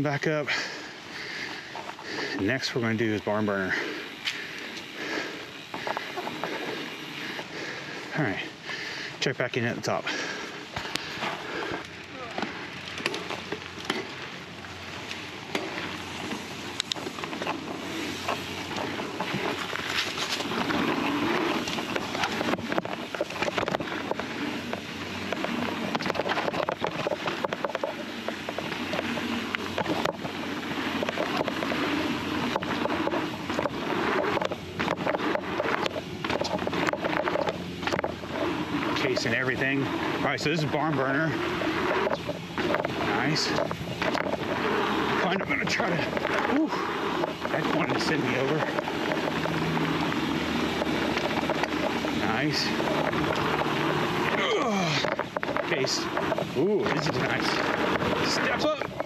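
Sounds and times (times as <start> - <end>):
bike rattling over bumps: 0.0 - 59.0
bike tyres rolling over dirt: 0.0 - 59.0.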